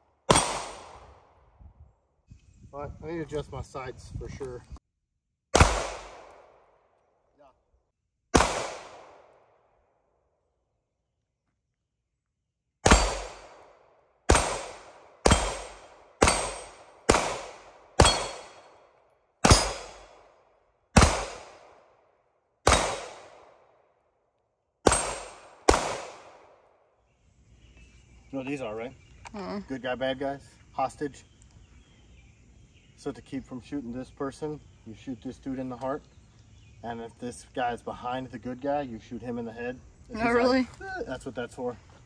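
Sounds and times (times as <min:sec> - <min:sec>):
pistol shots with echo: 0:00.3 - 0:01.3, 0:05.5 - 0:06.8, 0:08.3 - 0:09.5, 0:12.8 - 0:20.3, 0:20.9 - 0:21.9, 0:22.6 - 0:23.8, 0:24.8 - 0:26.6.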